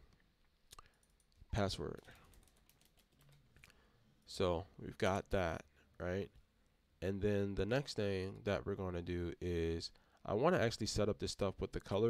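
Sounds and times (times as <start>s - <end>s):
keyboard keys clicking: 2.0s - 3.4s.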